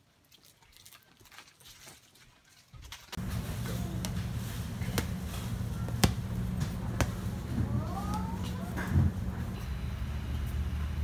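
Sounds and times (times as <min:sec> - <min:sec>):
loud low hum with hiss: 0:03.2 - 0:11.0.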